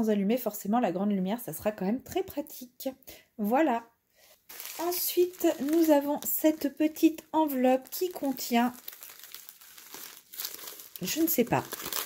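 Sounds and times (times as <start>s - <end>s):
plastic envelope crinkling: 4.4s - 12.0s.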